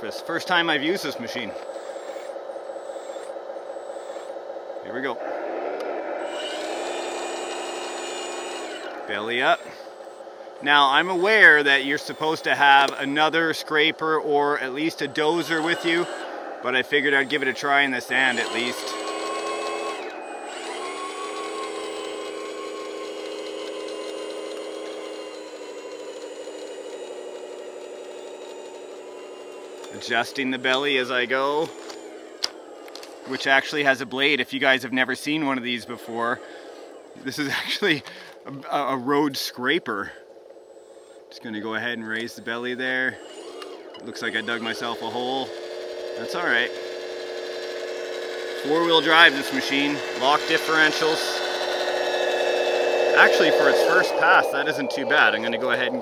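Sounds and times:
faint high whine: 0:00.0 - 0:25.7, 0:26.9 - 0:56.0
toy vehicle motor humming: 0:00.2 - 0:56.0
blade scraping sand: 0:14.7 - 0:19.8, 0:43.7 - 0:56.0.

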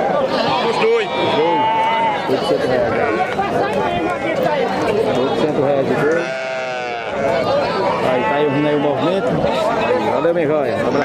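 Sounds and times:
people talking: 0:00.0 - 0:11.0
goat or sheep bleating: 0:00.2 - 0:03.4, 0:06.0 - 0:08.9.

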